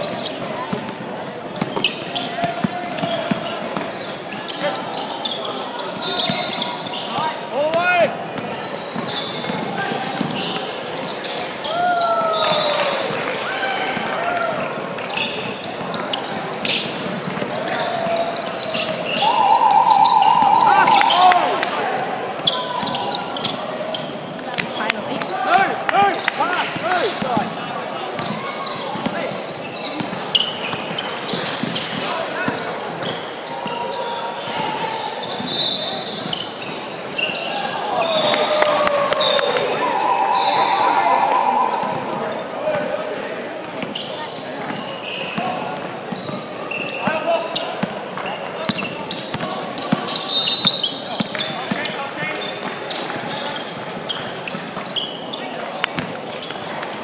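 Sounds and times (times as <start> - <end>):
sneaker squeaks: 0.0 - 12.9, 15.0 - 21.3, 22.4 - 39.6, 43.7 - 57.0
murmur of voices: 0.0 - 57.0.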